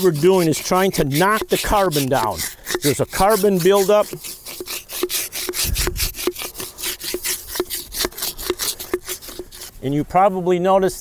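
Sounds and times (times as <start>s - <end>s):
wooden scraper scraping wood: 0.0s - 9.8s.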